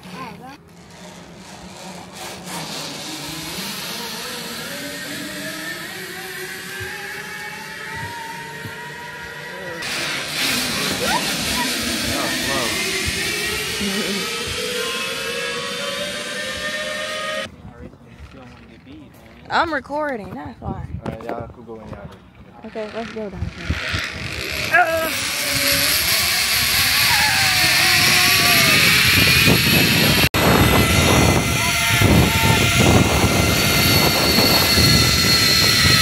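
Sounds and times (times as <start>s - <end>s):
zip-line trolley whirring on cable: 0.0s - 17.5s, 22.6s - 36.0s.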